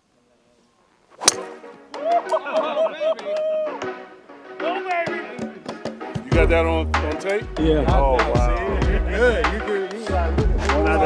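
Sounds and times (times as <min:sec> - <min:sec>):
golf driver striking ball: 0:01.2 - 0:01.8.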